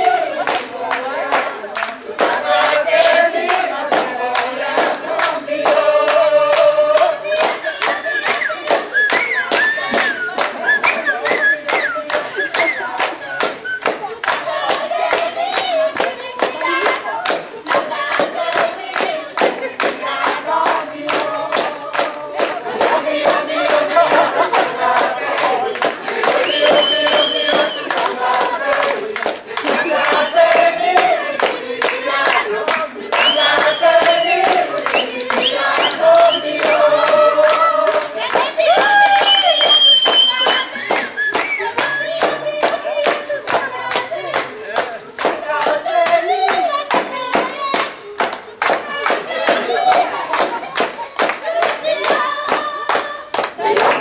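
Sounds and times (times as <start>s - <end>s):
group singing: 0.0s - 54.0s
rhythmic hand clapping: 0.0s - 54.0s.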